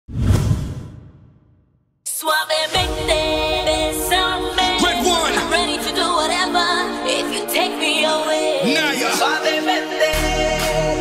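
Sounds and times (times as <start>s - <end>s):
whoosh sound effect: 0.1s - 1.3s.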